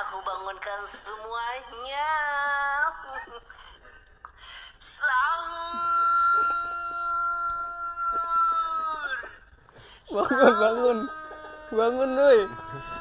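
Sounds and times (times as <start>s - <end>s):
high wailing voice from phone speaker: 10.2s - 13.0s.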